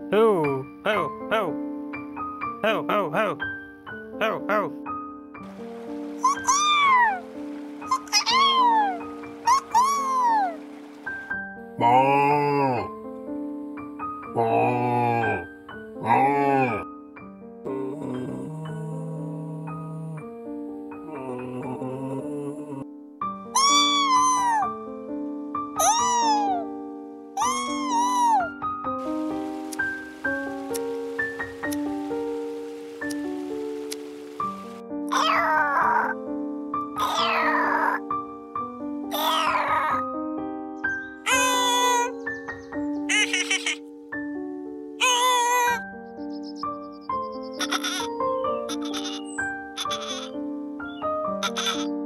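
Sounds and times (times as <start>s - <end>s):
background keyboard music: 0.0s - 52.0s
animal crying call: 6.2s - 7.2s, 7.9s - 10.6s, 23.5s - 24.7s, 25.8s - 26.7s, 27.4s - 28.5s, 35.1s - 36.2s, 37.0s - 38.0s, 39.1s - 40.0s, 41.2s - 42.2s, 43.1s - 43.8s, 45.0s - 45.8s, 47.6s - 50.4s, 51.4s - 52.0s
faint hiss: 29.0s - 34.8s
alpaca humming: 43.1s - 43.8s, 45.0s - 45.8s.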